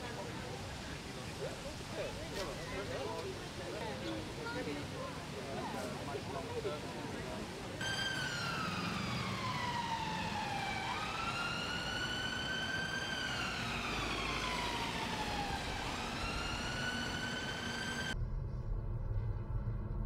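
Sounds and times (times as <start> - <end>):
low traffic rumble: 0.0 - 20.0
emergency vehicle siren wailing: 7.8 - 18.2.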